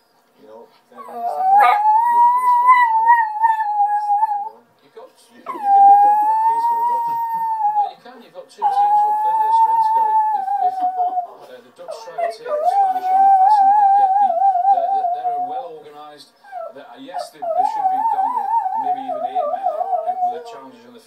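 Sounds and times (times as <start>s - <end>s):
dog howling: 1.0s - 4.6s, 5.5s - 8.0s, 8.6s - 11.3s, 11.9s - 15.7s, 16.5s - 20.8s.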